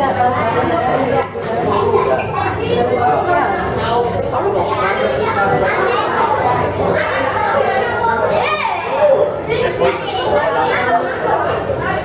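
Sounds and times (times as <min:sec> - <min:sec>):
chatter of people and children: 0:00.0 - 0:12.0.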